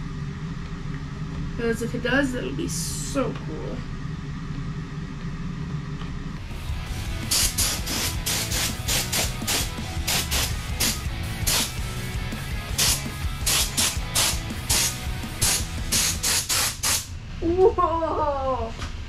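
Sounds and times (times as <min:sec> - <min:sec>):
paint spray gun hissing: 0:07.2 - 0:11.9, 0:12.6 - 0:17.1.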